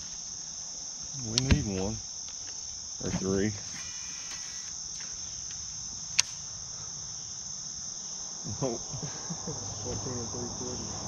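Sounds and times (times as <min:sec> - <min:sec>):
insects chirring in trees: 0:00.0 - 0:11.0
sharp click: 0:05.5 - 0:06.4.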